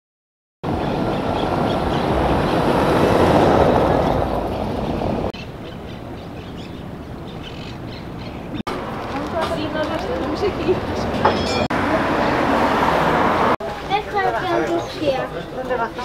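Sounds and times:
passing car: 0.7s - 7.0s, 7.8s - 14.4s.

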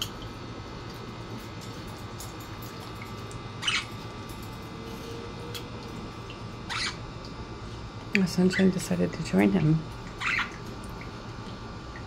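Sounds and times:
low background hum: 0.0s - 12.0s
budgerigar harsh calls: 3.6s - 3.9s, 6.7s - 7.0s, 10.2s - 10.6s.

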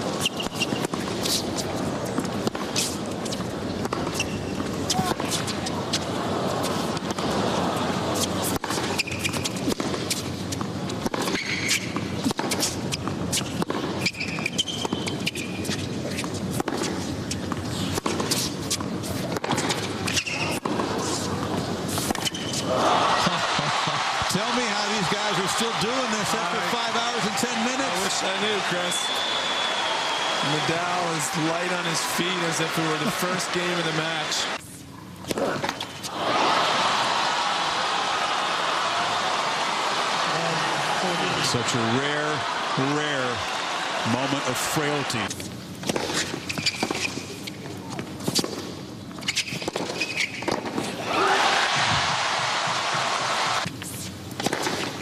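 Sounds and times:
sneakers squeaking on court: 0.1s - 6.0s, 8.2s - 22.7s, 45.9s - 50.7s
crowd murmur: 4.8s - 8.6s, 22.7s - 28.9s
crowd cheering and applause: 6.1s - 8.2s, 22.6s - 34.6s, 36.1s - 45.3s, 51.0s - 53.7s
racket striking tennis ball: 11.0s - 22.6s, 45.8s - 47.3s, 54.4s - 55.0s.

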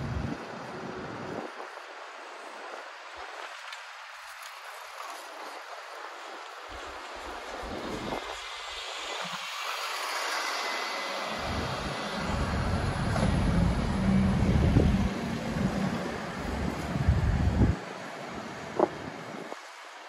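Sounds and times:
city traffic hiss: 6.7s - 20.0s
bus engine rumbling: 9.6s - 19.4s.

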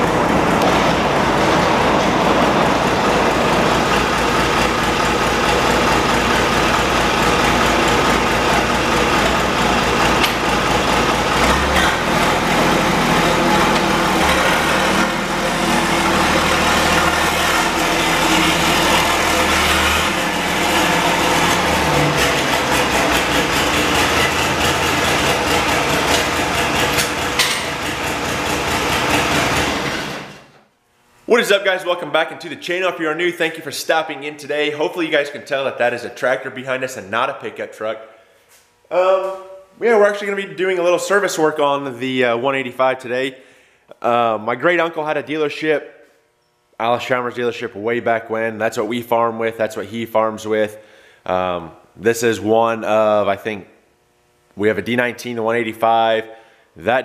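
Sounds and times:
tractor diesel engine running: 0.0s - 30.5s.

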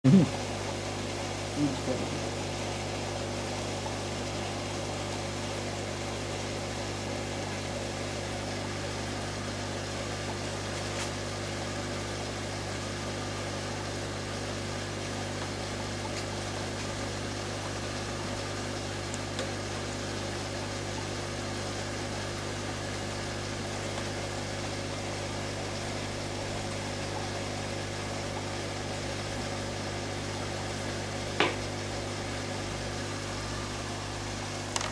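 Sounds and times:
aquarium pumps humming: 0.0s - 34.9s.

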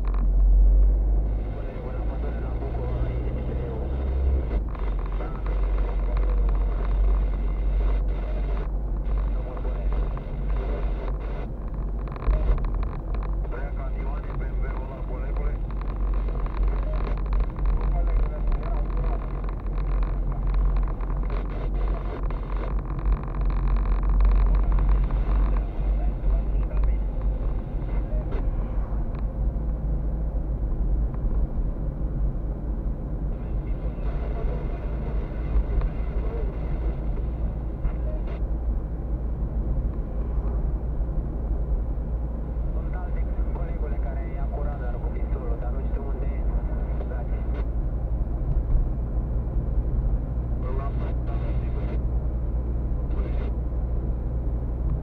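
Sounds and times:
car interior rumble: 0.0s - 55.0s.

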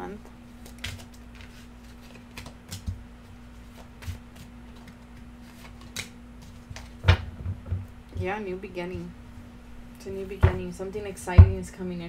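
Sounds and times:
faint hum: 0.0s - 12.0s
cards being shuffled: 0.5s - 7.1s.

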